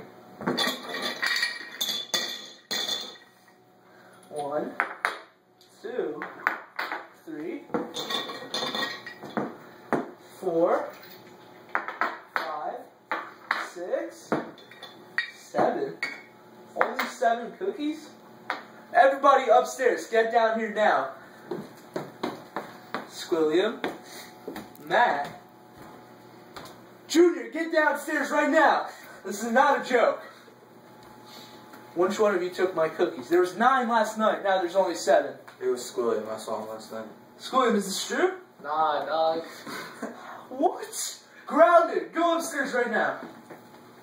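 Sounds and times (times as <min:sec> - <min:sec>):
glass jar clinking: 0:00.5 - 0:03.4, 0:07.9 - 0:09.4.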